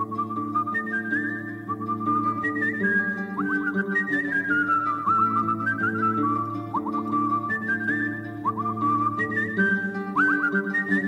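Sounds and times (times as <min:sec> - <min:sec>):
whistled melody: 0:00.0 - 0:11.0.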